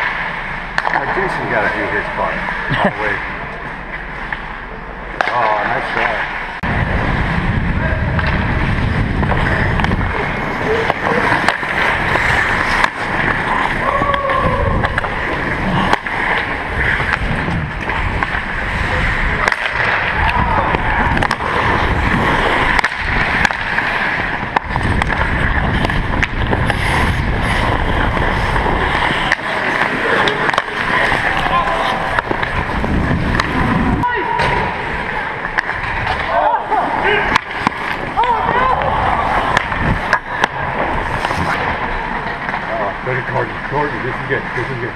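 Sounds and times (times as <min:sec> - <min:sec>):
sticks and puck clacking: 0:00.0 - 0:06.7, 0:08.0 - 0:44.9
skate blades scraping ice: 0:00.0 - 0:44.9.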